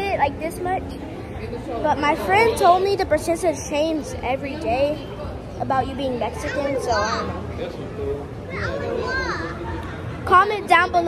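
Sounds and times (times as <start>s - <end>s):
low hum of busy shop: 0.0s - 11.0s
voices talking: 0.0s - 11.0s.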